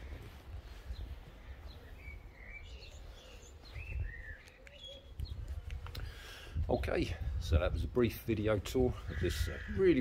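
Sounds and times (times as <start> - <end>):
small birds chirping: 0.0 - 7.0.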